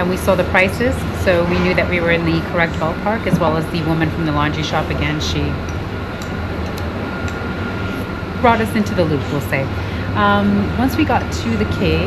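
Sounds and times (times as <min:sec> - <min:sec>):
faint high whine: 0:00.0 - 0:12.0
low mechanical hum: 0:00.0 - 0:12.0.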